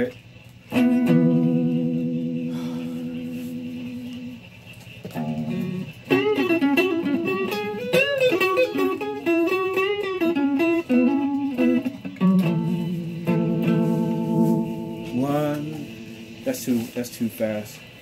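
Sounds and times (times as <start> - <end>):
electric guitar lead with bends: 0.7 - 17.0.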